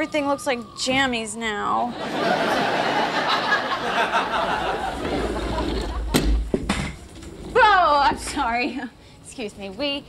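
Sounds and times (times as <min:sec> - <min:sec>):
audience laughter: 0:01.9 - 0:06.3.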